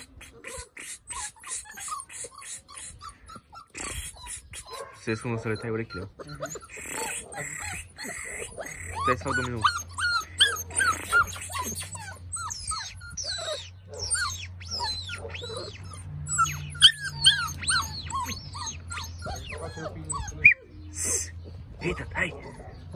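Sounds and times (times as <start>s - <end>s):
puppies whining and yelping: 0.0s - 22.9s.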